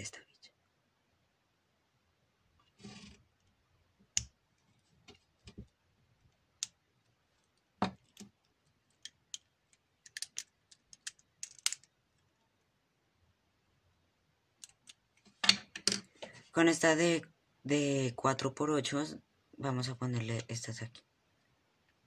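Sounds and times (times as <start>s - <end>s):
plastic bricks clicking: 8.9s - 11.9s.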